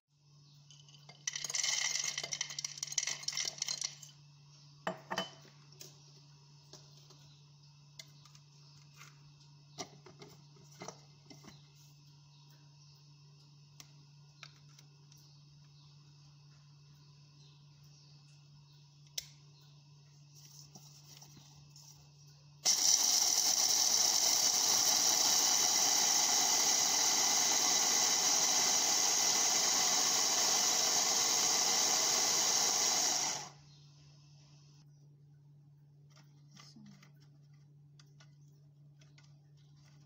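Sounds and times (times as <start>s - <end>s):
hand blender grinding nuts: 22.6s - 33.6s.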